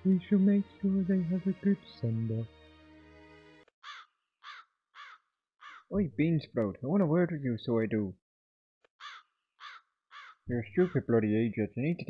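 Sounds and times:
crow cawing: 3.8s - 5.9s, 9.0s - 10.9s.

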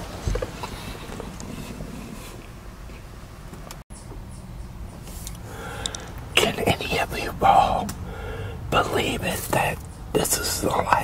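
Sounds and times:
breath noises: 5.1s - 6.3s, 8.0s - 8.7s
soft mouth clicks: 5.2s - 6.1s.

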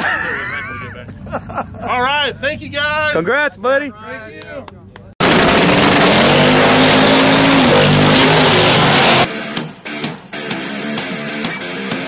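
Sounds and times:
racing car engine at full throttle: 5.2s - 9.3s.

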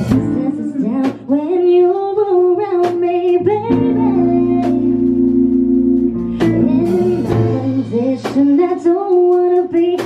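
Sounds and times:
sparse live band: 0.0s - 10.0s
woman singing into a microphone: 0.0s - 10.0s.

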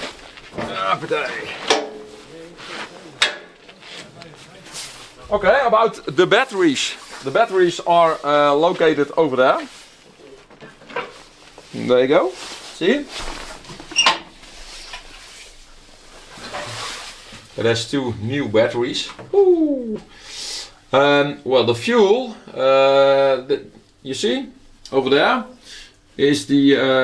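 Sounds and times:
faint handling noise: 0.0s - 17.6s
metallic clunk: 1.7s - 2.2s.

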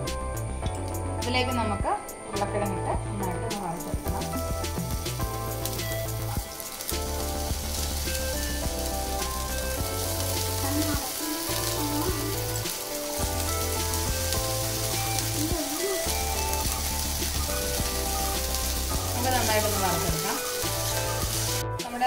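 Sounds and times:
background music with pulsing bass: 0.0s - 22.0s
potato frying in hot oil: 4.0s - 21.7s.

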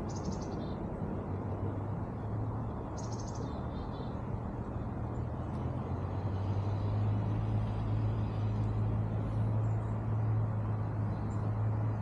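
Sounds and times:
low engine hum: 0.0s - 12.0s
outdoor background noise: 0.0s - 12.0s.

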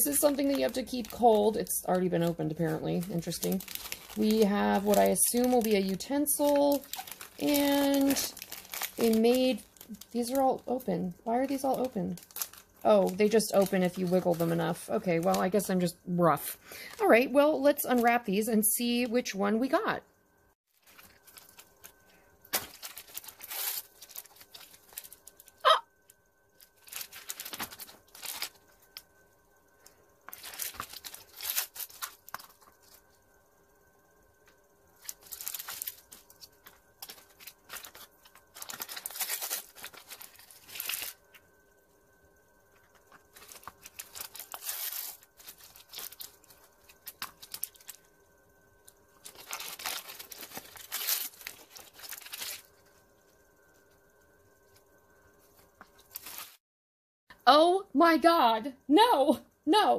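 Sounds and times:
plastic packets crinkling: 0.0s - 15.8s, 20.7s - 25.6s, 26.5s - 29.2s, 29.8s - 33.3s, 34.5s - 41.6s, 42.6s - 53.9s, 55.6s - 56.6s.

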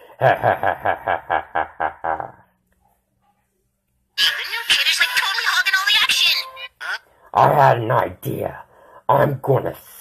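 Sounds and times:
man's villain laugh: 0.1s - 2.5s.

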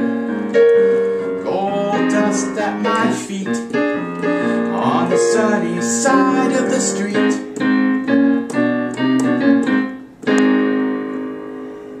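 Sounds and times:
digital piano playing chords: 0.0s - 12.0s.

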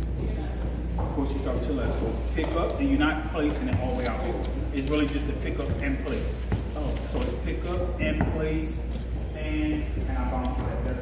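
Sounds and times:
indistinct talk of people: 0.0s - 11.0s
steady low hum: 0.0s - 11.0s.

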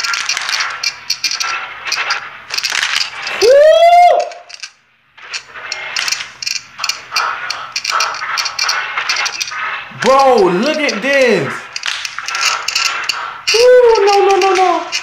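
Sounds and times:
sharp clicking and rattling: 0.0s - 15.0s.

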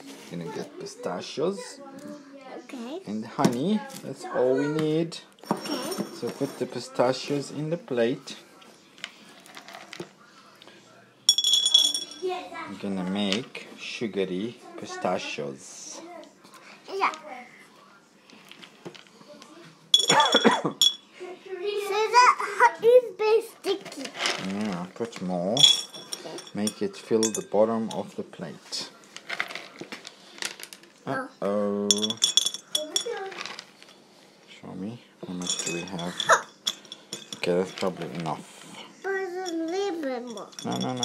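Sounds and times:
pistachios clicking and rattling: 24.0s - 27.5s, 31.9s - 33.9s, 39.5s - 41.0s.

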